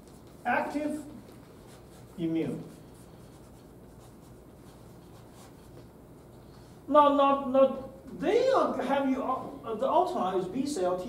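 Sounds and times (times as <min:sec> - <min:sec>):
chalk scratching on chalkboard: 0:00.0 - 0:05.9.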